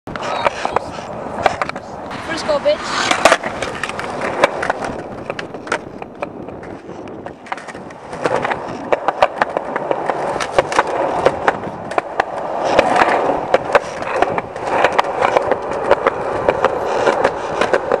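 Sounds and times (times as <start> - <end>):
skateboard clicks and knocks: 0.1 - 18.0
skateboard wheels rolling on concrete: 0.1 - 18.0.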